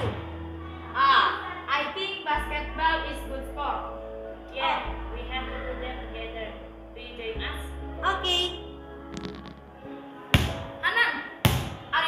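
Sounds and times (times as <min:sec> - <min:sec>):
background music: 0:00.0 - 0:12.0
basketball bouncing on tiles: 0:10.4 - 0:10.6, 0:11.5 - 0:11.8.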